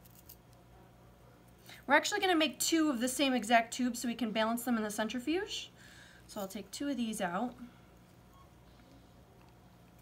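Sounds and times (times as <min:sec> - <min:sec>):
woman speaking: 0:01.9 - 0:07.8.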